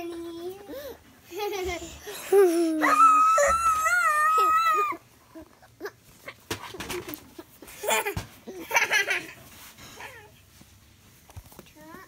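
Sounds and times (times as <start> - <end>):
toddler shrieking: 2.8 - 5.0
clicks and rustles: 6.1 - 7.7, 10.6 - 12.0.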